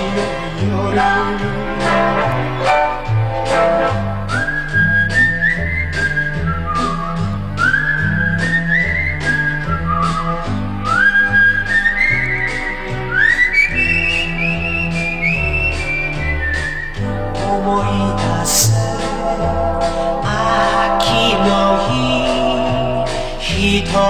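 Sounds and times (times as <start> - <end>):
pop band backing: 0.0 - 24.0
whistled melody: 1.8 - 23.6.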